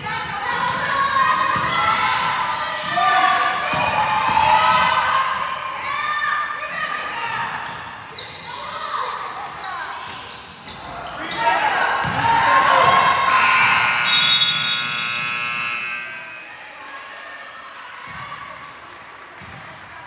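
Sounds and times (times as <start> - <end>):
sneakers squeaking: 7.6 - 16.4
voices calling out: 10.8 - 16.6.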